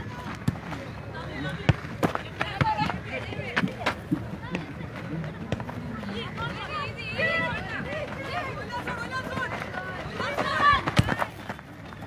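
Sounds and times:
people shouting and calling: 6.0 - 11.4.

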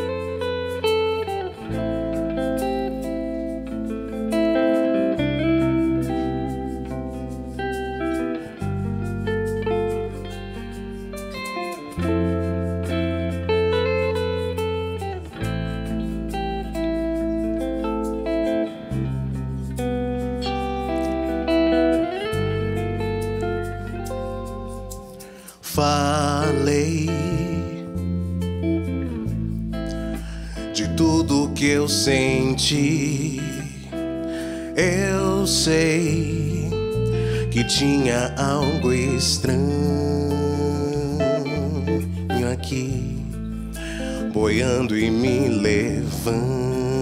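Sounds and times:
bass guitar: 0.0 - 47.0
electric guitar melody: 0.0 - 47.0.

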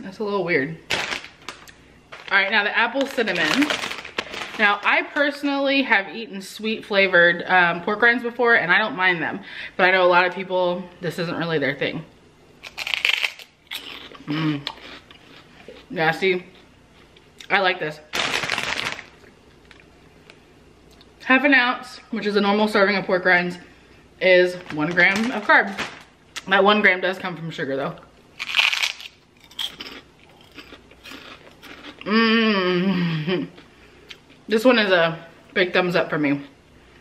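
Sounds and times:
crunchy bite: 12.6 - 15.1, 28.4 - 32.0
chewing crunches: 12.6 - 15.9, 28.4 - 32.1.

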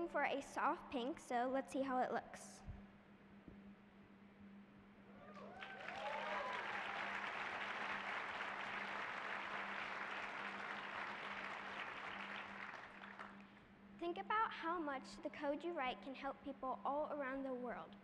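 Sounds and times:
audience whooping: 5.2 - 13.2
audience applauding: 5.3 - 13.4.

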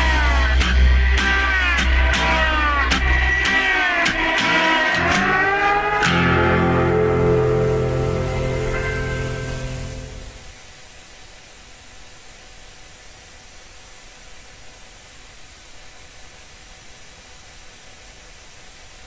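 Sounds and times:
rock band final chord: 0.0 - 10.6
steady hiss: 0.0 - 19.0.

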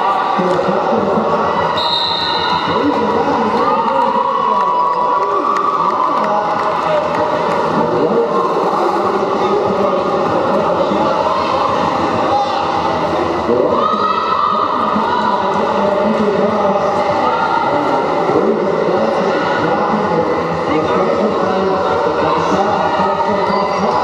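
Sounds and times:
crowd talking and calling out: 0.0 - 24.0
whistle blast: 1.8 - 2.8.

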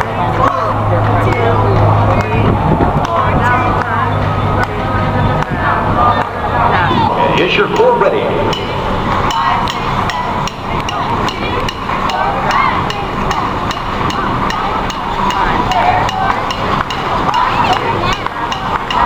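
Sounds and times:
background voices: 0.0 - 19.0
sharp evenly spaced clicks: 7.6 - 19.0.

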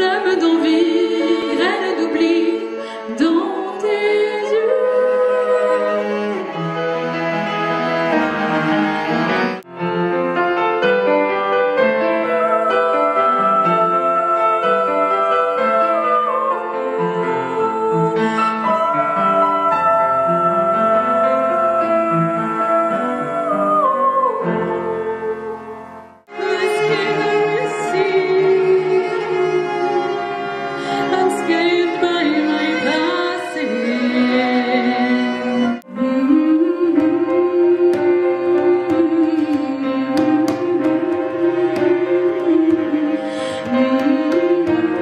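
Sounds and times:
woman singing: 0.0 - 6.6, 12.0 - 45.0
cello bowed notes: 0.0 - 45.0
piano accompaniment: 0.0 - 45.0.

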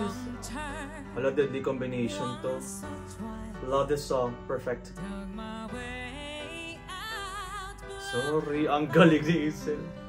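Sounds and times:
woman singing a ballad: 0.0 - 3.9, 4.9 - 10.0
backing music: 0.0 - 10.0.

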